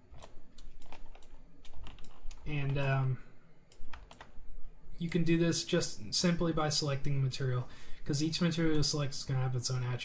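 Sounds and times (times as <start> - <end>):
computer keyboard clicking: 0.2 - 2.4, 3.7 - 4.3.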